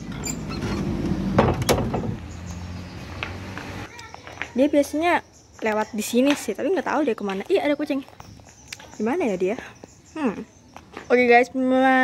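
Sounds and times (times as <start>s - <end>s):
wooden door scraping open: 0.0s - 2.2s.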